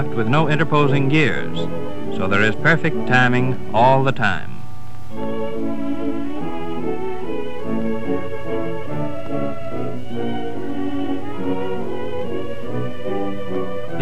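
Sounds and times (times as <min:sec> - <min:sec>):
orchestral music led by strings: 0:00.0 - 0:14.0.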